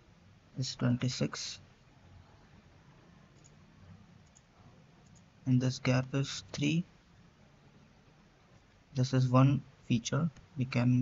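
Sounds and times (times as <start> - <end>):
computer mouse clicks: 3.3 - 3.6, 4.2 - 5.3.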